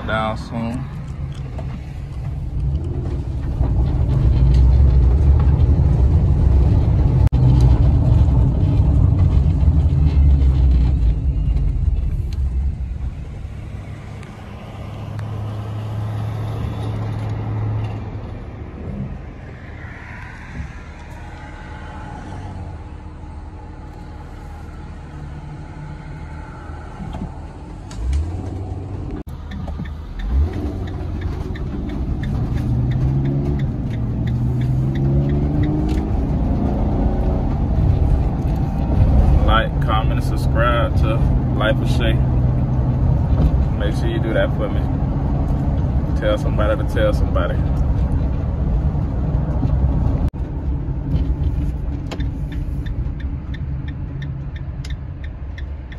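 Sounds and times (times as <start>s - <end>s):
van engine and road rumble: 0.0s - 55.9s.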